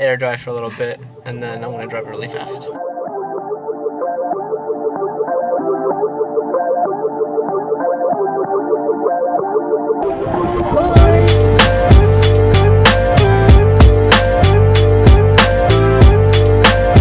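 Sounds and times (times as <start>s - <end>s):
muffled melodic background music: 0.0s - 17.0s.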